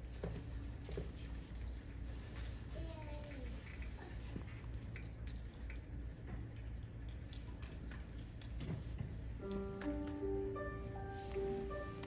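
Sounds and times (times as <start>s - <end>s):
low steady hum: 0.0s - 12.0s
small clicks and rustles: 0.2s - 10.2s
piano held notes: 9.4s - 12.0s.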